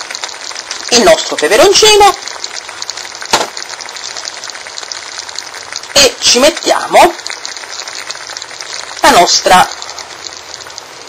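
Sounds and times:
sauce sizzling in metal pan: 0.0 - 11.0
sharp tap: 3.3 - 3.6.

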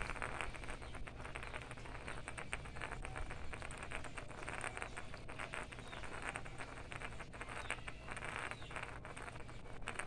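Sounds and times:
spinning top rasping on concrete: 0.0 - 10.0.

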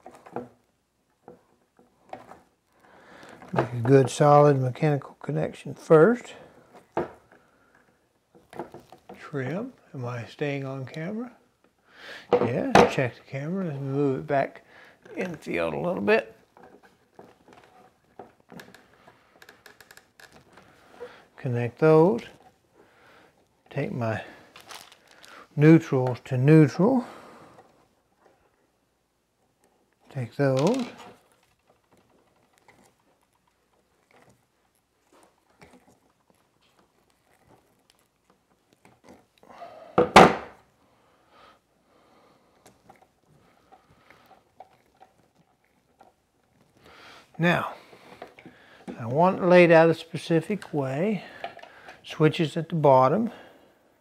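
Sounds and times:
wires clicking and rustling: 0.0 - 53.5.

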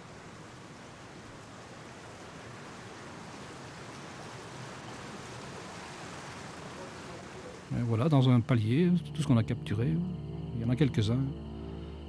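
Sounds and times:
water rushing out: 0.0 - 8.4.

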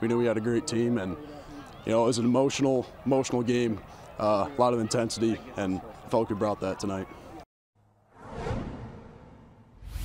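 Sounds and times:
deeper whoosh: 8.0 - 10.0
whoosh sound effect: 8.1 - 10.0.

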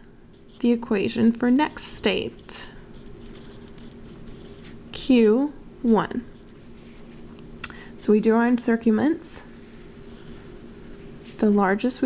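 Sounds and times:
faint steady hum: 0.0 - 12.0
pen scratching on paper: 1.6 - 4.8.

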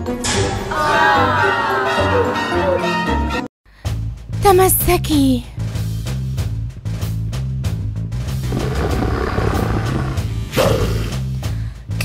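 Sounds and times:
background music with bass line: 2.3 - 12.0
raspy growl: 8.4 - 11.3.

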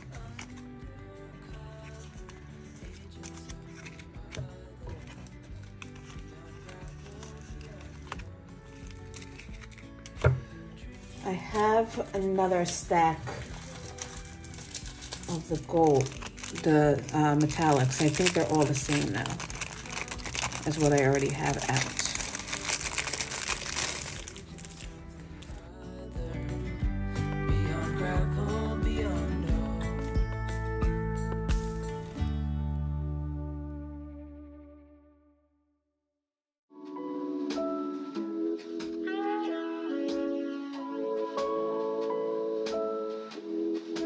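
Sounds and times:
paper sheets rustling: 0.0 - 0.6, 1.5 - 11.2, 13.2 - 25.5
soft background music: 0.0 - 34.7, 36.7 - 44.0
plastic sleeve crinkling: 1.6 - 11.3, 13.2 - 25.6.

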